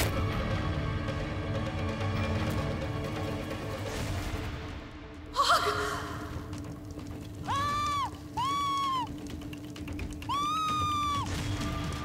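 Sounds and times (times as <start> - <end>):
person shrieking and wailing: 7.4 - 9.1, 10.3 - 11.3.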